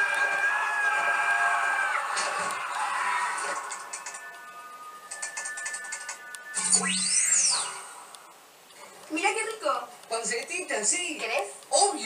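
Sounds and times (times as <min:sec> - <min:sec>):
gliding whistling tone: 0:04.9 - 0:08.2.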